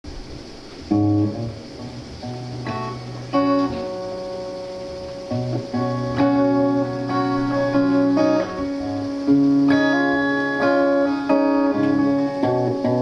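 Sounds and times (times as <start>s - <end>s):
electric guitar picked chords: 0.1s - 13.0s.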